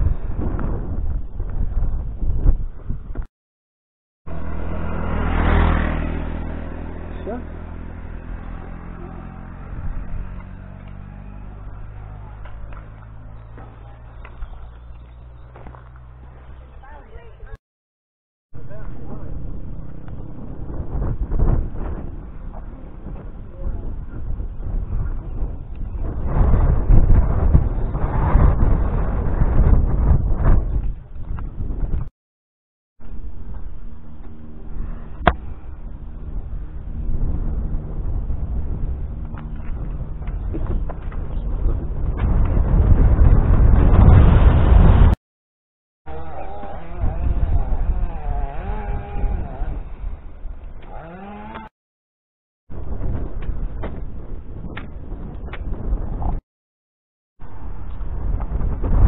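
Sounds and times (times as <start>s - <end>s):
wind buffeting microphone: 0.0s - 3.3s, 4.6s - 16.8s, 18.6s - 32.1s, 33.3s - 45.2s, 46.3s - 51.4s, 52.7s - 56.4s, 57.4s - 59.0s.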